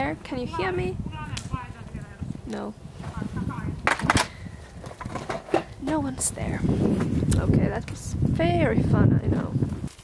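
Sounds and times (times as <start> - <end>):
woman speaking: 0.0 - 3.8, 5.8 - 6.7, 7.4 - 9.6
wind rumbling on microphone: 0.0 - 10.0.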